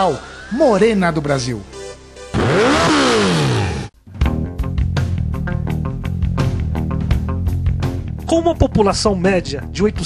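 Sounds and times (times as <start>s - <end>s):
motorcycle passing at speed: 2.4s - 3.9s.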